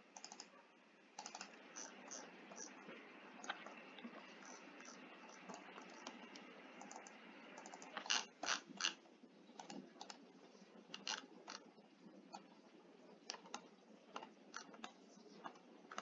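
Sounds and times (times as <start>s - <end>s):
low background hiss: 0.0s - 16.0s
keyboard and mouse clicking: 0.2s - 0.5s, 1.2s - 2.7s, 3.4s - 9.0s, 9.6s - 10.2s, 10.9s - 11.6s, 13.3s - 16.0s.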